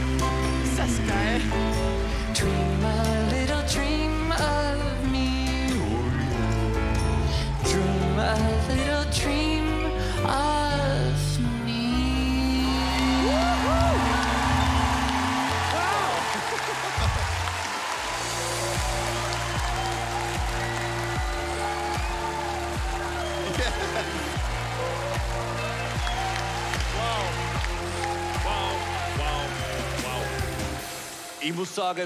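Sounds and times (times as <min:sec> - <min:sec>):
audience applauding and cheering: 0:00.0 - 0:09.2, 0:11.9 - 0:32.0
background music with steady beat: 0:00.0 - 0:32.0.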